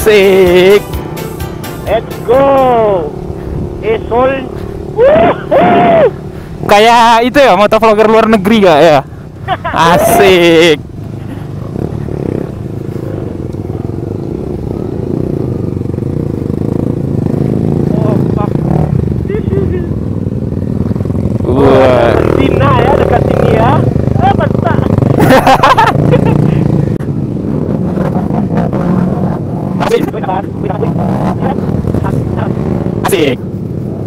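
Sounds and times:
motorcycle engines at low speed: 0.0 - 34.0
people shouting: 4.9 - 6.2, 9.8 - 10.5.

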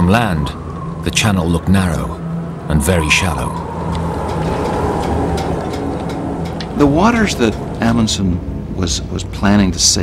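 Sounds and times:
low mechanical rumble: 0.0 - 9.8
constant hum: 0.0 - 10.0.

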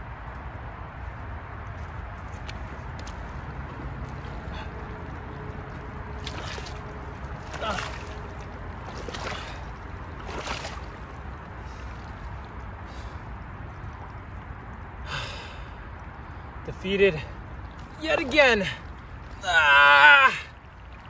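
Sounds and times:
feet squelching in mud: 1.7 - 14.1, 17.3 - 21.0.

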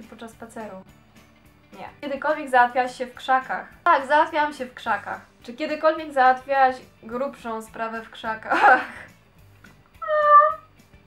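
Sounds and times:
cat meowing: 10.0 - 10.7.

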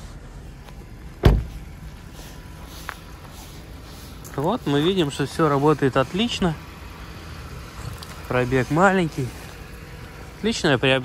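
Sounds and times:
low background rumble: 0.0 - 11.0
car door shutting: 1.2 - 1.6.

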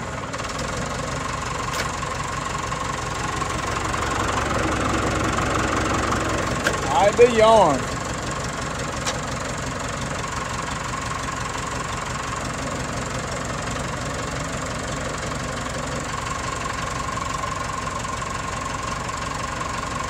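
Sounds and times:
tractor engine running: 0.0 - 20.0.

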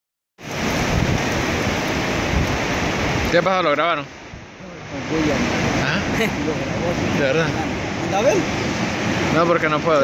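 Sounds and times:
wind rumbling on microphone: 0.4 - 9.8
surf washing onto beach: 0.4 - 10.0.

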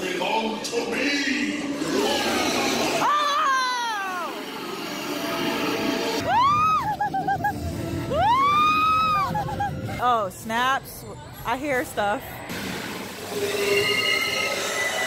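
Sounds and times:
high-pitched screams: 1.8 - 4.7, 6.0 - 7.1, 8.1 - 9.7.

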